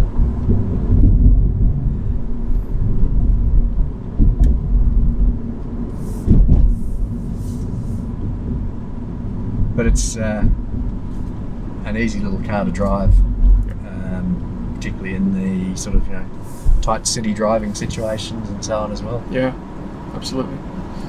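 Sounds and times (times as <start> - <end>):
faint steady hum: 0.0 - 21.0
road and tyre rumble: 0.0 - 21.0.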